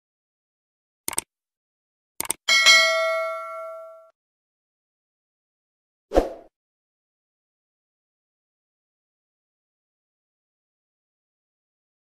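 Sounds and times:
mouse clicks: 0:01.1 - 0:01.3
notification bell ding: 0:02.5 - 0:04.1.

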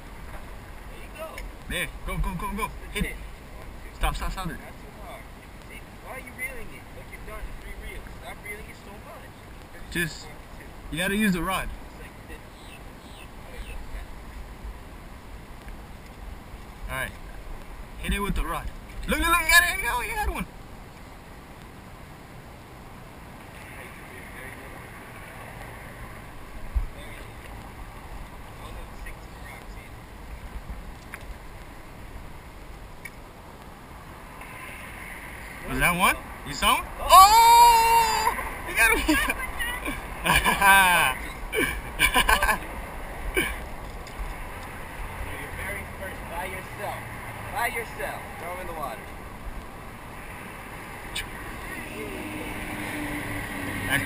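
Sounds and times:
background noise: 0:00.0 - 0:54.0
faint clicks: 0:29.6 - 0:31.7.

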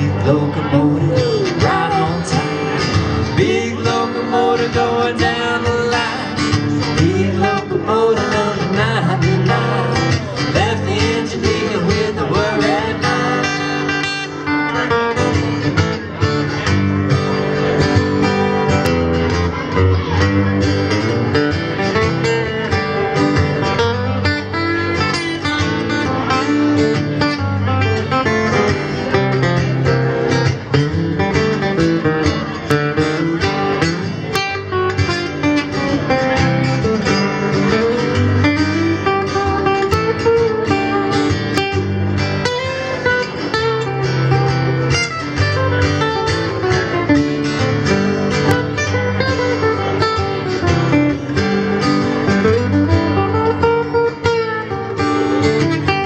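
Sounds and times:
acoustic guitar strummed and picked: 0:00.0 - 0:56.0.

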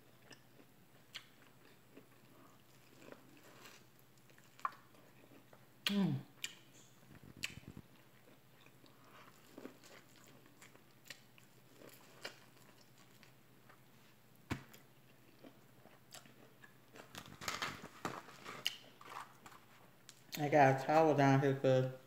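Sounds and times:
chewing crispy chicken: 0:00.0 - 0:13.8, 0:14.7 - 0:20.4.

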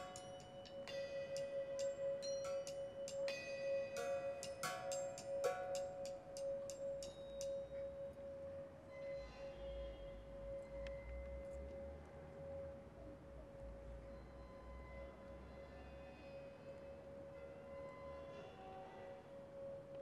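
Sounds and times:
singing bowl ringing tone: 0:00.0 - 0:12.6.

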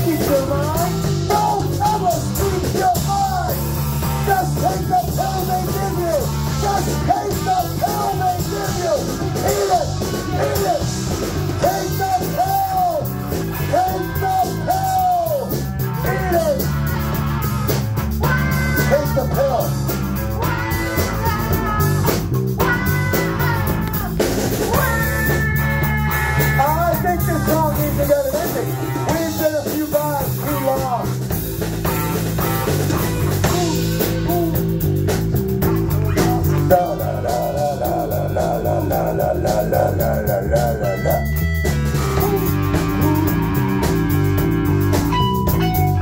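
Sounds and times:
drum kit: 0:00.0 - 0:46.0
electric bass: 0:00.0 - 0:46.0
electric guitar lead: 0:00.0 - 0:46.0.

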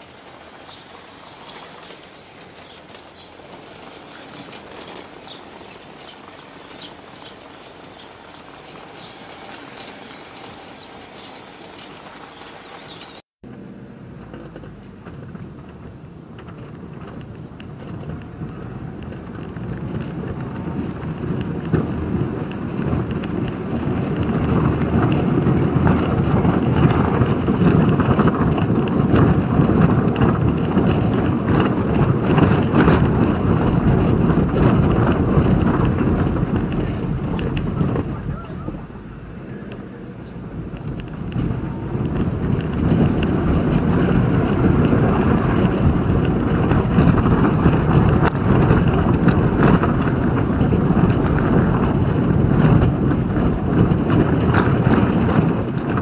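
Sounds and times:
car tyres rumbling on cobblestones: 0:00.0 - 0:56.0.

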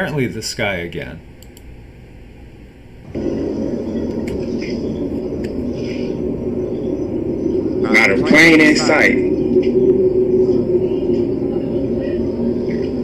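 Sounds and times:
faint clicks: 0:01.4 - 0:01.7
low rumbling drone from sky: 0:02.5 - 0:13.0.

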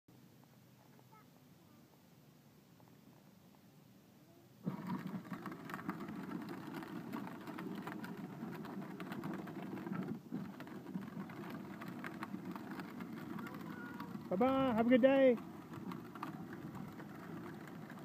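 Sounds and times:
plastic wheels rumbling on asphalt: 0:04.6 - 0:18.0
toy car electric motor: 0:04.7 - 0:18.0.

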